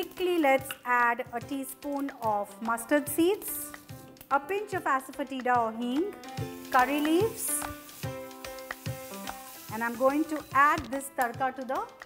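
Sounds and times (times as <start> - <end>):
plucked background music: 0.0 - 12.0
leaves sizzling in hot ghee: 6.2 - 11.6.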